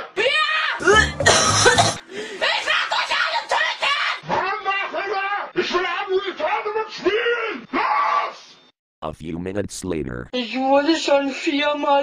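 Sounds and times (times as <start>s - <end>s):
coughing: 0.8s - 2.0s
cartoon male voice speaking: 9.0s - 10.4s.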